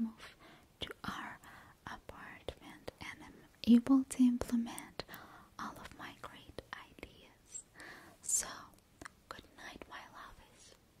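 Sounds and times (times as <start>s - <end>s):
woman whispering: 0.0s - 10.8s.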